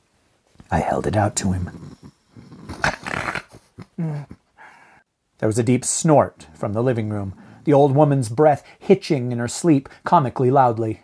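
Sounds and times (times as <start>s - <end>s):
woman snorting in sleep: 1.7s - 4.3s.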